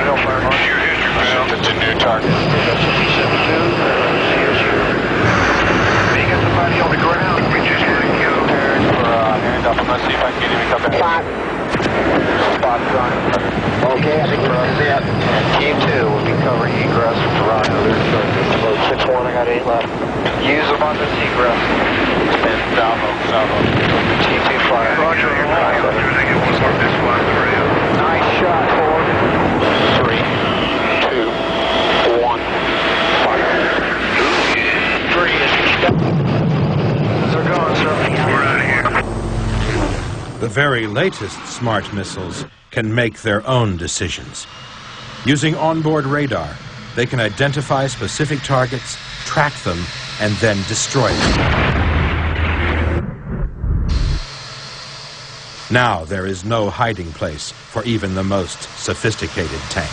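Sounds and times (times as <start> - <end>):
voices over radio intercom: 0.0 - 36.1, 37.2 - 44.5, 45.3 - 51.4, 55.7 - 59.9
helicopter engine and rotor: 0.0 - 42.0, 43.8 - 51.4, 54.0 - 59.9.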